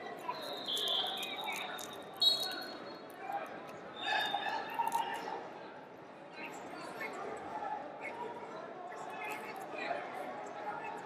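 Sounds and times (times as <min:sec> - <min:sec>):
background chatter in a hall: 0:00.0 - 0:11.0
referee's whistle: 0:00.3 - 0:03.0.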